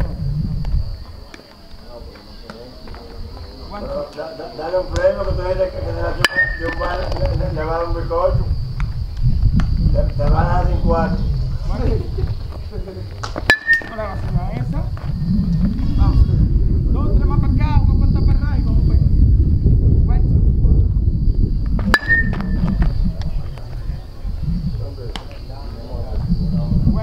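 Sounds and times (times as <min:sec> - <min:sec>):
metal bat pinging a ball: 0:06.2 - 0:06.8, 0:13.4 - 0:14.0, 0:21.9 - 0:22.6.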